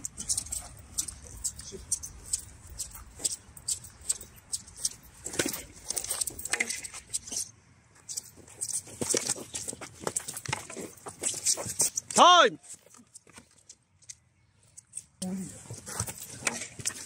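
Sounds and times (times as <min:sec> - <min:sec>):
clicks and scuffs: 0:00.0 - 0:17.0.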